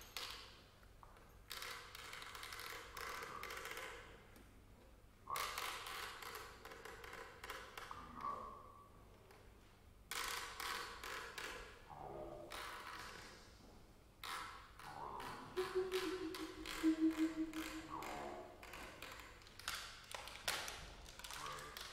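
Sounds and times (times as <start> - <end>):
brief pitched tones: 15.6 - 18.4.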